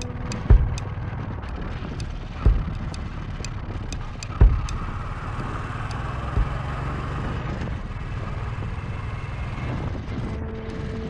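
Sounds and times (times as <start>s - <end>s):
sharp thump: 0.0s - 0.8s, 2.5s - 3.0s, 4.3s - 5.0s, 6.4s - 6.8s
motorcycle engine running: 0.0s - 9.7s
wind and road noise: 0.0s - 11.0s.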